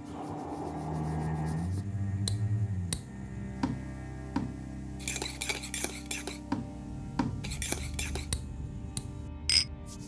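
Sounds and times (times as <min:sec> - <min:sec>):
quiet background music: 0:00.0 - 0:10.0
metal spoon stirring in ceramic mug: 0:05.0 - 0:06.4.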